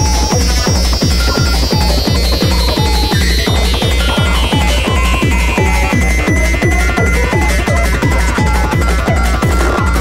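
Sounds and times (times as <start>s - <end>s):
heavy kick drum: 0.0s - 10.0s
high synth tone falling in pitch: 0.0s - 10.0s.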